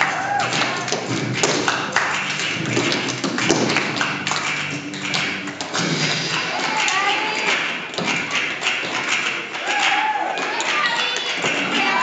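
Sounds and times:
tap shoes on wooden stage: 0.0 - 12.0.

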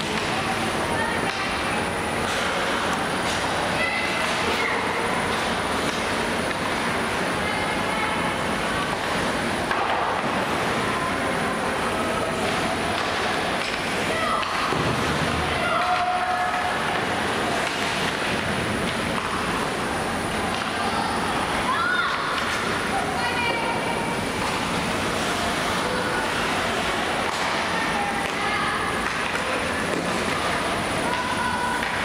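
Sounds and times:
arena noise: 0.0 - 32.0
players shouting calls: 14.0 - 17.8.

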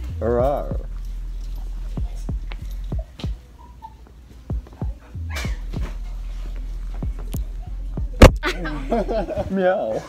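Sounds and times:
steady low rumble: 0.0 - 3.2, 4.5 - 9.4.

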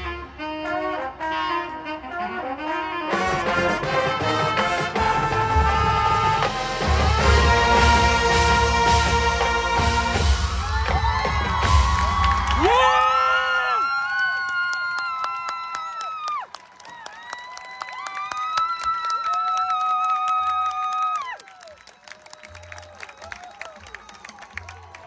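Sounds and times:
marching band sustained chords: 0.0 - 12.4.

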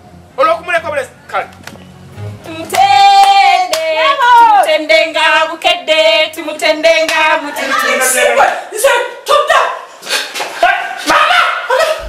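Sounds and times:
sharp hand clap: 2.7 - 3.9.

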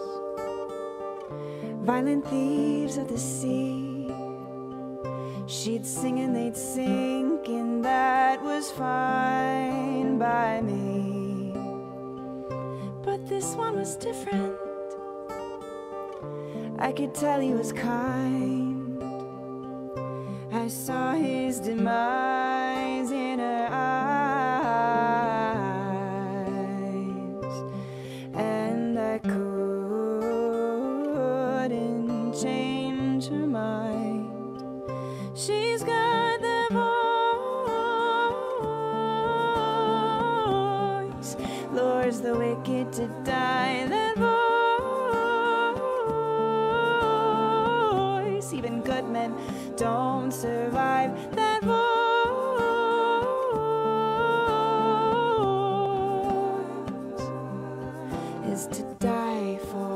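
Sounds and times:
acoustic guitar: 0.0 - 59.9
woman singing: 0.0 - 59.9.

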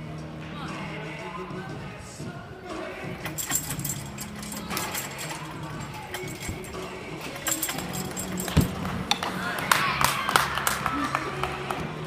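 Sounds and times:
metallic clicking and jingling: 3.2 - 8.9.

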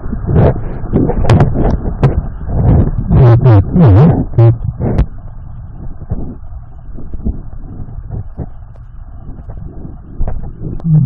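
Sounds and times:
muffled underwater river rush: 0.0 - 11.0
small underwater clicks and knocks: 0.4 - 3.1, 4.4 - 10.9
person trying to speak underwater: 3.0 - 4.8.

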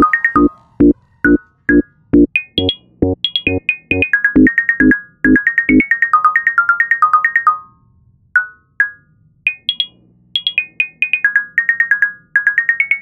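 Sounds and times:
plucked synthesizer melody: 0.0 - 5.8.

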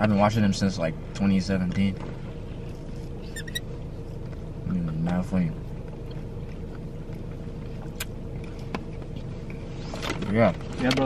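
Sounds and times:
car cabin engine hum: 0.0 - 11.0.

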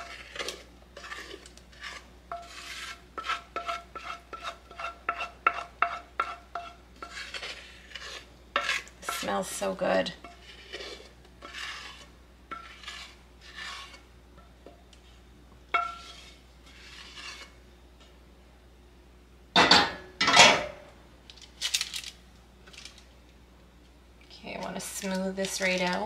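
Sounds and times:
spatula scraping a pot: 0.0 - 14.1, 15.7 - 17.6
pot and utensil clattering: 19.6 - 20.8.

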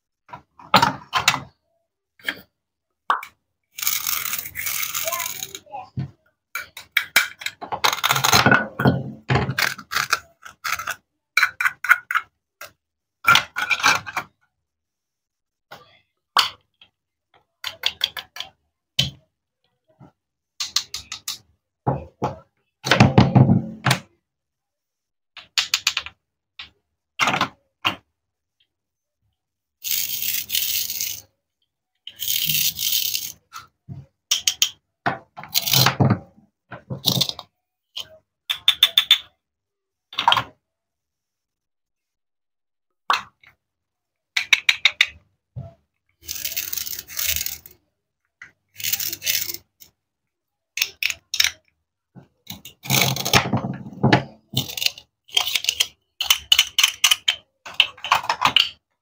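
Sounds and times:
toy pieces clicking and knocking: 3.1 - 5.7, 6.6 - 8.6, 9.5 - 14.3, 17.6 - 19.2, 20.6 - 21.5, 25.4 - 28.0, 29.8 - 31.3, 32.0 - 36.0, 36.9 - 39.3, 44.3 - 45.2, 46.1 - 47.8, 48.4 - 50.0, 50.8 - 51.7, 52.4 - 58.9.

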